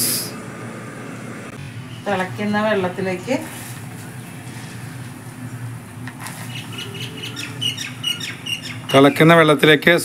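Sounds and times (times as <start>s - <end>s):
low steady hum: 0.0s - 10.0s
small bird chirping: 6.5s - 9.2s.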